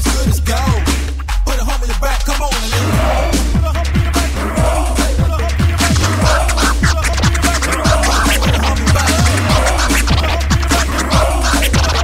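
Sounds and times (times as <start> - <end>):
dj mix with heavy bass beat: 0.0 - 12.0
turntable scratching: 4.1 - 12.0.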